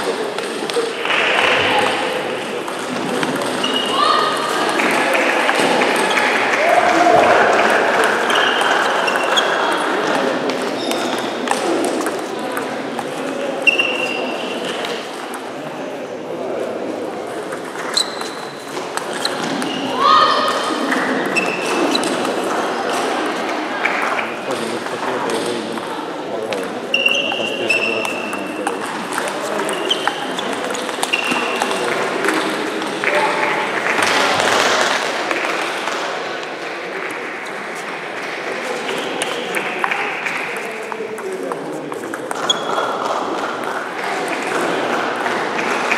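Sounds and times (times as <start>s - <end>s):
murmur of voices: 0.0s - 45.9s
loud rushing noise: 1.0s - 2.5s.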